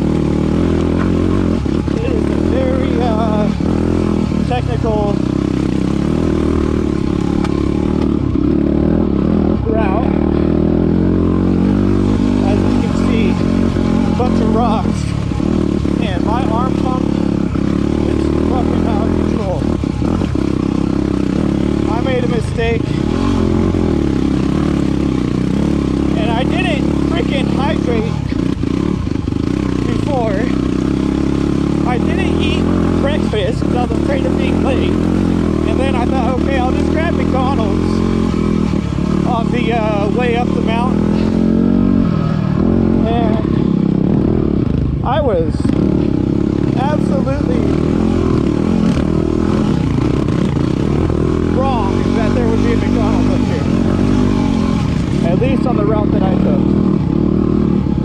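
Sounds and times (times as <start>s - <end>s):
motorcycle engine revving under load: 0.0s - 58.0s.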